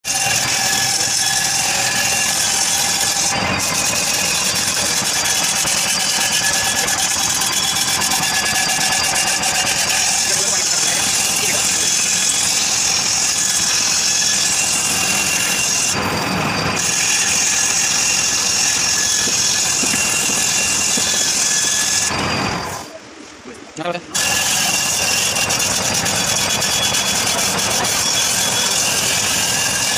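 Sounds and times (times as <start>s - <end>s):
chisel shaving spinning wood: 0.0s - 22.7s, 24.2s - 29.9s
lathe motor hum: 0.1s - 22.9s, 24.2s - 29.9s.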